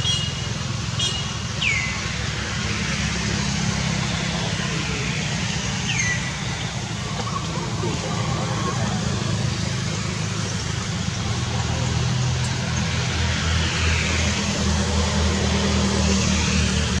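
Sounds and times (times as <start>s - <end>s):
vehicle engine hum: 0.0s - 17.0s.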